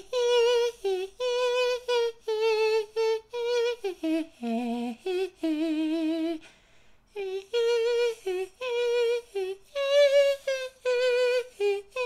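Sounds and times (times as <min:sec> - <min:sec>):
person humming a tune: 0:00.0 - 0:06.5, 0:07.1 - 0:12.0.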